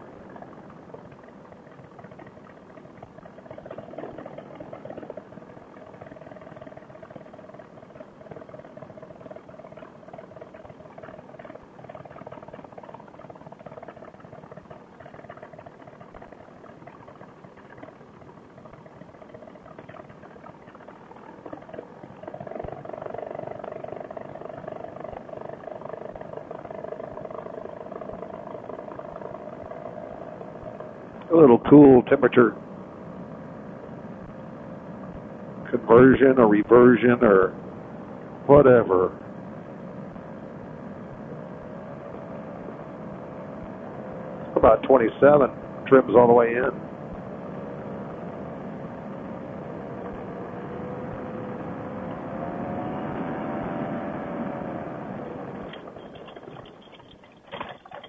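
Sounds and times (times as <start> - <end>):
muffled engine hum: 0.0 - 58.0.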